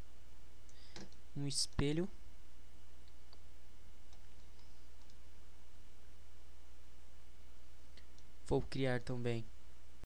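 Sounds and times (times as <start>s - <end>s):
low electrical hum: 0.0s - 10.0s
faint computer mouse clicks: 4.1s - 5.2s, 7.9s - 8.3s.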